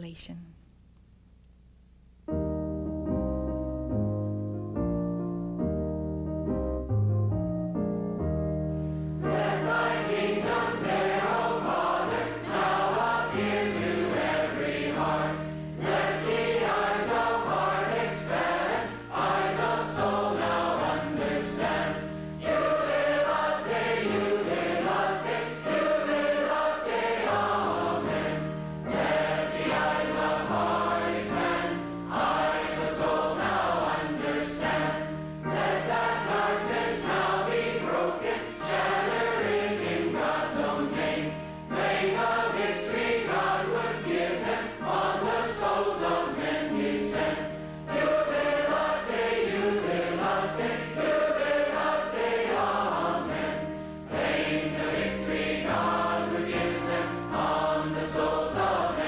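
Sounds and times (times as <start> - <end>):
congregation singing a hymn: 9.2 - 59.0.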